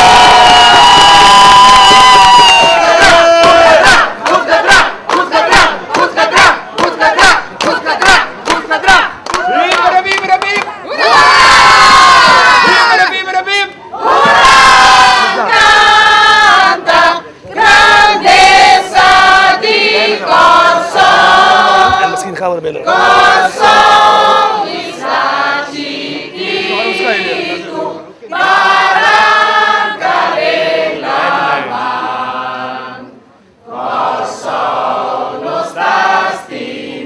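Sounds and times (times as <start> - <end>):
crowd singing: 2.5 - 37.0.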